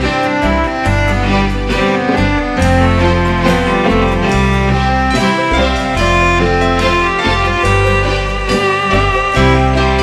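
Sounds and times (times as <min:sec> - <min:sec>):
bass line: 0:00.0 - 0:10.0
electric keyboard sustained notes: 0:00.0 - 0:10.0.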